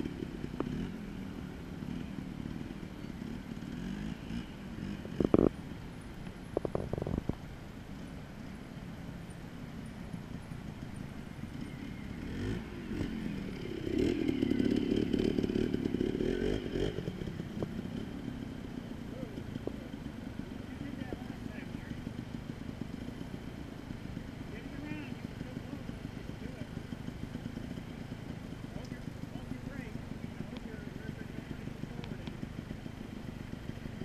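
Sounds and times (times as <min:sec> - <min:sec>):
motorcycle engine revving: 0:00.0 - 0:34.0.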